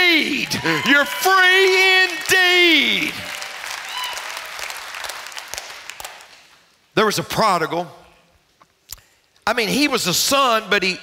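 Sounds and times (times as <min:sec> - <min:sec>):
congregation applauding: 0:00.0 - 0:06.7.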